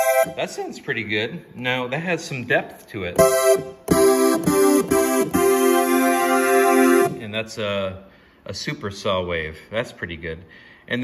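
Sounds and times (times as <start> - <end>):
synthesizer chords: 0.0 - 0.5, 3.2 - 7.2.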